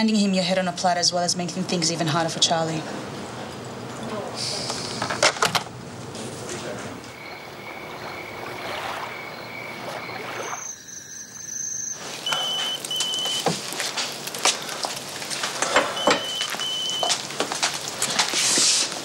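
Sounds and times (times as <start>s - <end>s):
insects chirping: 7.0s - 14.9s.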